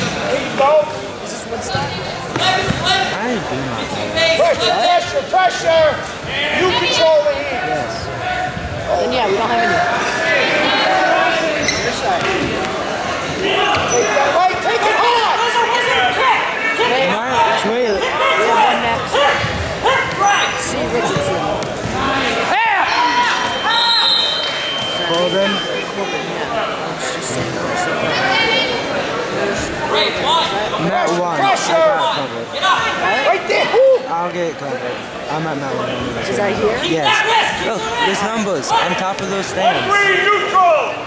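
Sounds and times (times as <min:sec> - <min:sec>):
voices shouting over each other: 0:04.2 - 0:11.8, 0:13.4 - 0:21.2, 0:22.0 - 0:24.8, 0:36.8 - 0:39.0, 0:39.6 - 0:41.0.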